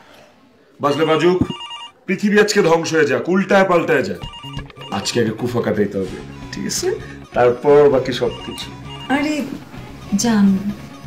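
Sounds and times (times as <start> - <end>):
person speaking: 0.9 - 1.6, 3.8 - 8.7
pulsing electronic ringing tone: 0.9 - 2.0, 4.2 - 10.3.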